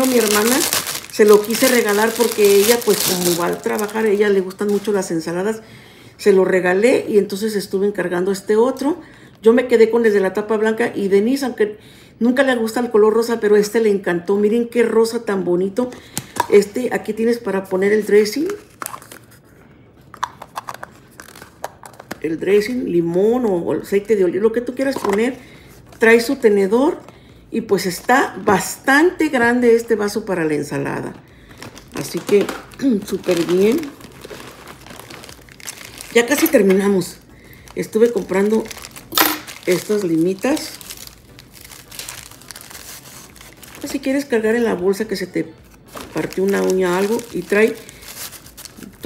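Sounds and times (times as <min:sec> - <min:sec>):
plastic packaging crinkling: 0:00.0 - 0:05.3, 0:18.4 - 0:19.4, 0:20.0 - 0:22.2, 0:31.2 - 0:49.0.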